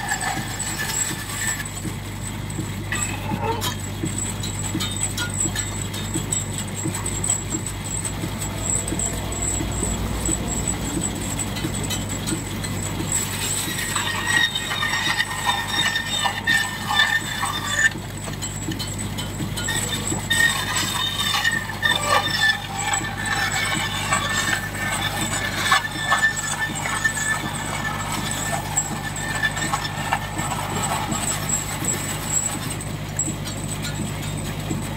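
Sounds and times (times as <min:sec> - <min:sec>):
saw blade cutting timber: 0:00.0 - 0:02.0, 0:08.0 - 0:32.9
bandsaw running with low hum: 0:00.0 - 0:34.9.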